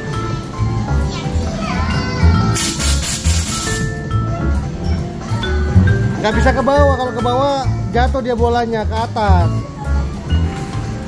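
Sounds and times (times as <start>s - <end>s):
children's voices: 0.2s - 2.6s
loud rushing hiss: 2.6s - 3.8s
music with steady beat: 2.6s - 8.4s.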